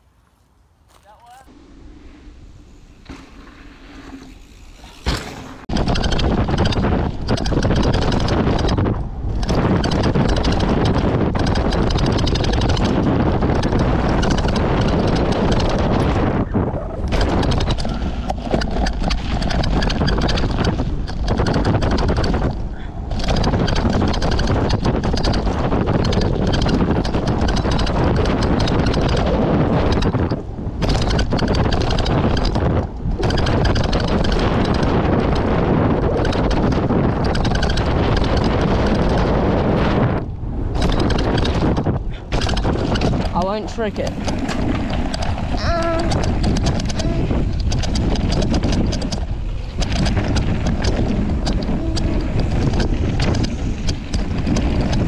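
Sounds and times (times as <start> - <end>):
bike rattling: 0.0 - 55.0
wind rush on microphone: 1.3 - 55.0
tyres rolling on dirt: 3.0 - 55.0.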